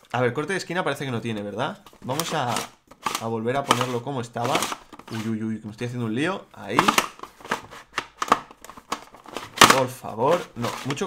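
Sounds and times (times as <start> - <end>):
plastic puzzle cube clacking: 1.9 - 5.3, 6.8 - 11.0.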